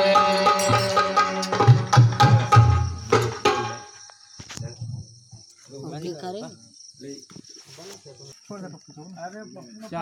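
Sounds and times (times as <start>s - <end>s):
cricket trill: 0.0s - 10.0s.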